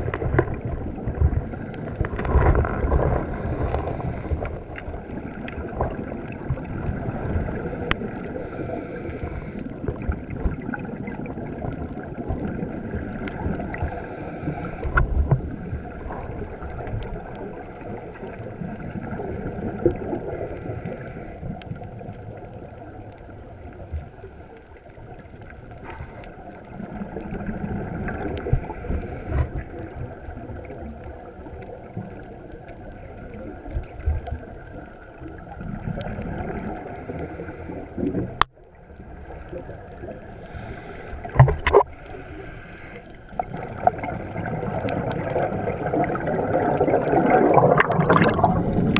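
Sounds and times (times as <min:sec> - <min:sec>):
bubbles rumbling and gurgling: 0:00.0 - 0:48.9
muffled underwater noise: 0:00.0 - 0:48.9
diver breathing through regulator: 0:03.0 - 0:05.1, 0:07.3 - 0:09.9, 0:13.7 - 0:16.4, 0:17.3 - 0:21.6, 0:25.8 - 0:26.5, 0:28.1 - 0:29.8, 0:36.6 - 0:38.1, 0:40.2 - 0:43.5.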